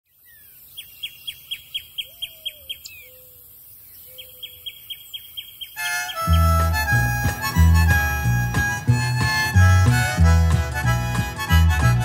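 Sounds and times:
birds chirping: 0.1 - 12.0
harmonica music: 5.8 - 12.0.

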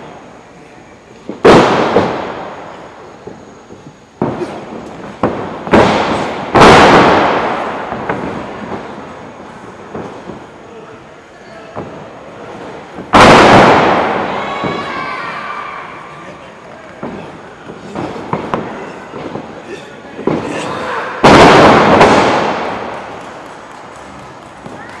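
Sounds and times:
crowd shouting: 13.9 - 16.3, 20.4 - 21.4.

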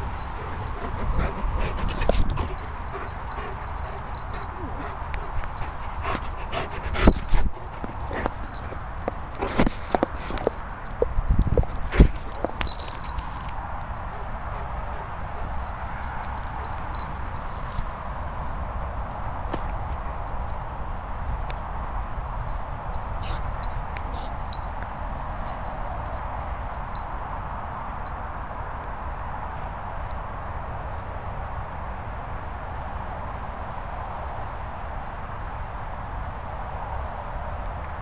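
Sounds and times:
handling rustle and rumble: 0.0 - 27.0.

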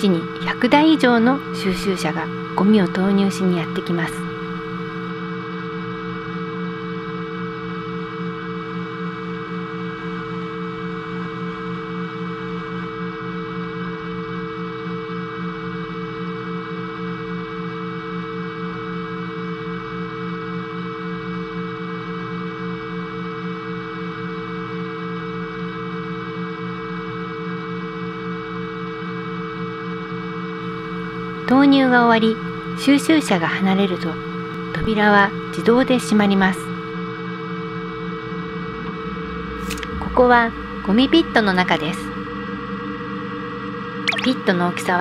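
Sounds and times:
ambient drone music: 36.8 - 45.0.

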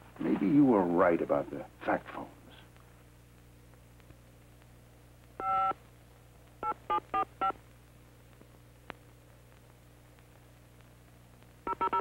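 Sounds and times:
faint steady hum: 0.0 - 12.0
touch-tone telephone beeps: 5.4 - 5.8, 11.7 - 12.0.

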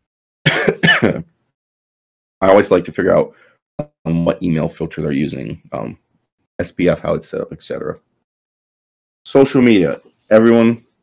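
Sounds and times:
man clearing his throat: 0.5 - 1.2.

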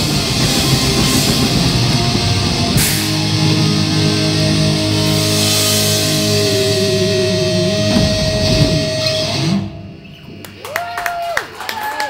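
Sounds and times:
metal band playing live: 0.0 - 9.9
electric guitar note ringing: 0.0 - 10.0.

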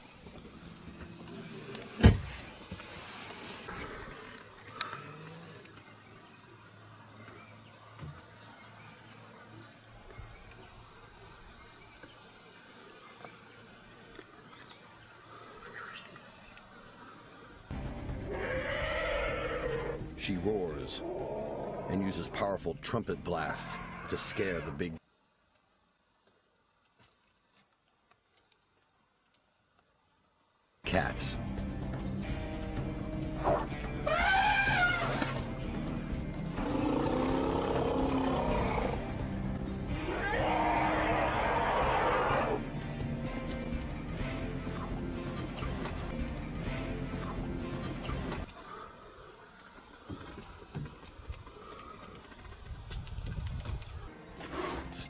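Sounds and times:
background music: 17.7 - 24.7, 30.9 - 48.8
elephant trumpeting: 18.3 - 20.0, 33.4 - 35.5, 36.5 - 39.1, 40.0 - 42.6.

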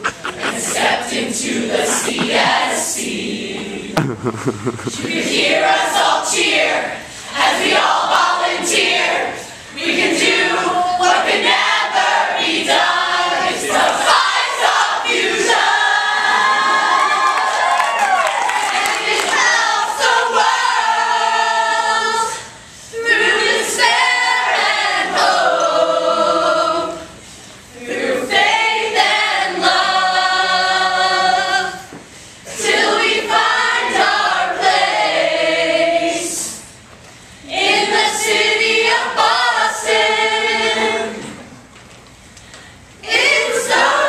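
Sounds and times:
group singing together: 0.0 - 17.6, 18.5 - 36.8, 37.4 - 41.7, 43.0 - 44.0.

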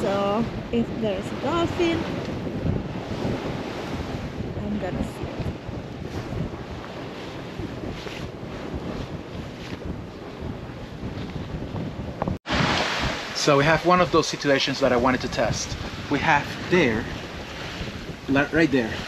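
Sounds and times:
sea water rushing along hull: 0.0 - 19.0
wind buffeting the microphone: 0.0 - 19.0.

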